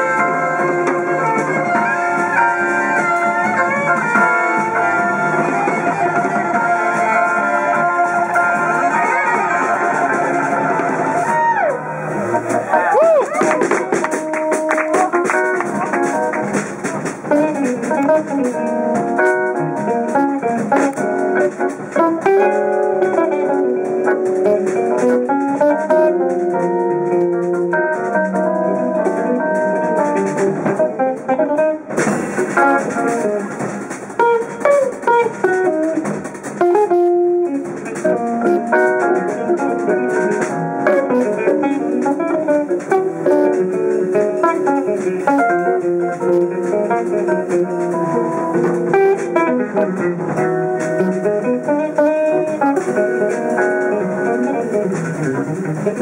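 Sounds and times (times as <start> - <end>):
drum kit: 0.0 - 56.0
electric guitar: 0.0 - 56.0.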